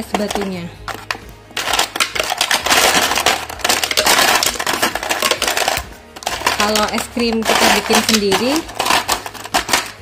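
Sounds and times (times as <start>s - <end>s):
ice cubes clattering into blender jar: 1.6s - 10.0s.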